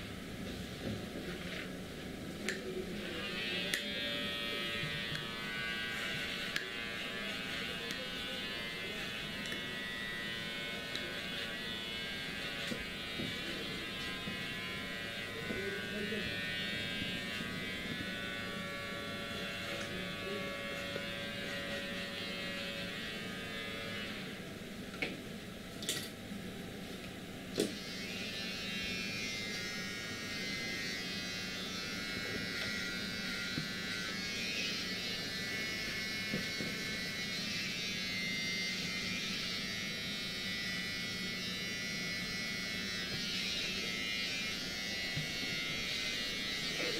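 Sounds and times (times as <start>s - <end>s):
electric hair clipper buzzing: 2.4s - 24.4s, 27.5s - 46.9s.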